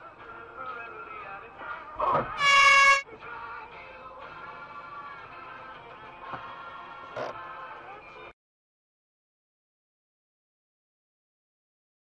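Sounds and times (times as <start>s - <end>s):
background music: 0.0s - 8.4s
car horn blast: 2.4s - 3.0s.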